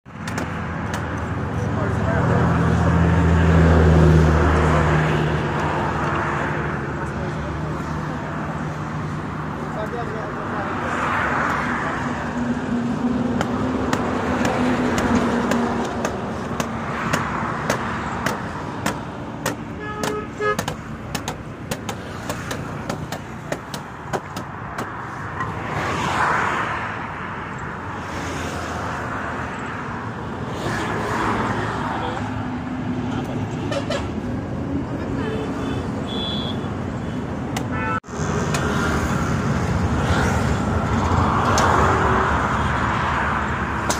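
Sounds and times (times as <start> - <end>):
highway traffic passing: 0.0 - 43.9
heavy engine: 0.1 - 25.8, 26.9 - 43.9
sharp knocks: 13.3 - 25.5.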